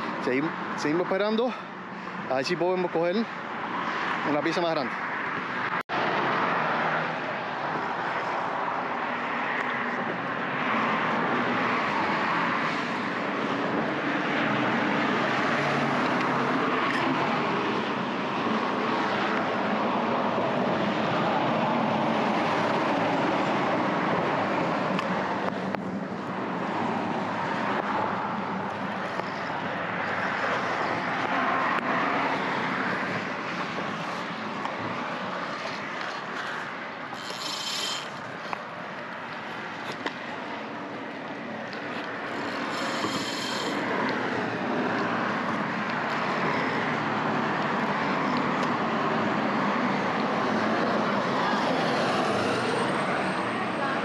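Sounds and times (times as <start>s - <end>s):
road traffic passing: 0.0s - 54.0s.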